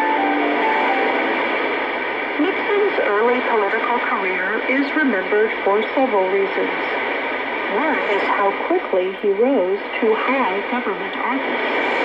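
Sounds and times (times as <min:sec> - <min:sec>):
radio signal noise: 0:00.0 - 0:12.0.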